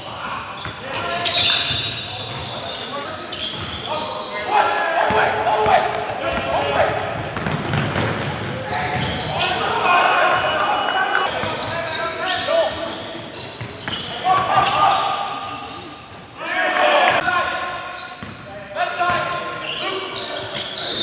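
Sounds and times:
players shouting: 0:03.8 - 0:07.2, 0:08.6 - 0:13.0, 0:13.9 - 0:17.8
basketball bouncing on court: 0:05.1 - 0:09.3, 0:18.2 - 0:18.4.

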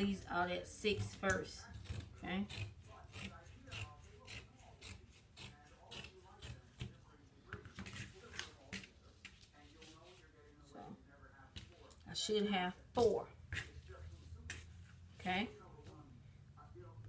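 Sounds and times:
shears cutting fabric: 0:00.9 - 0:07.0.

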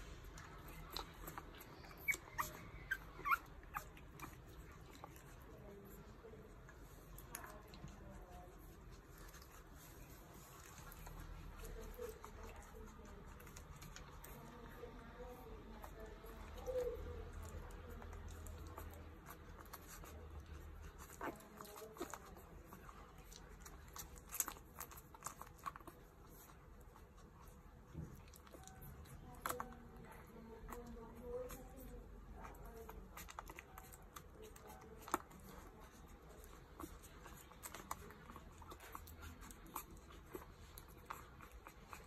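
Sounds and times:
puppies suckling clicks: 0:00.0 - 0:42.0
puppy squeaks: 0:00.8 - 0:04.9.

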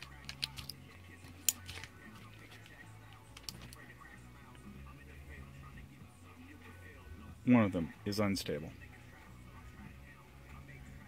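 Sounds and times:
cable connector clicking: 0:00.0 - 0:00.8, 0:03.3 - 0:03.8
radio playing music faintly: 0:00.0 - 0:11.0.

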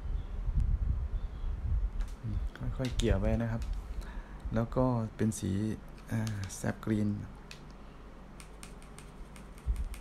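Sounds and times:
paintbrush tapping in palette: 0:08.4 - 0:10.0.

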